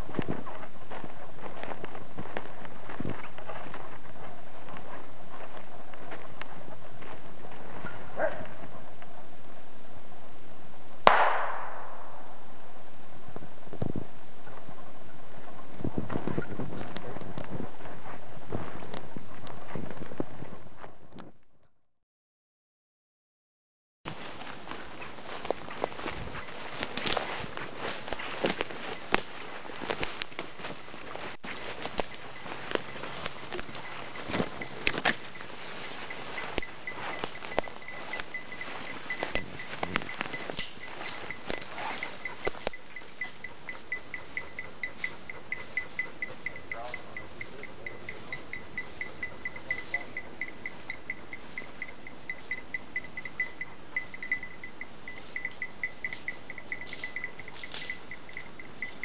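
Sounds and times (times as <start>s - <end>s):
footsteps crunching through dry leaves: 0.0s - 8.8s, 24.1s - 59.0s
rustling through ferns and brush: 0.0s - 10.9s, 12.9s - 20.9s, 24.1s - 59.0s
faint high ringing tick: 24.4s - 59.0s.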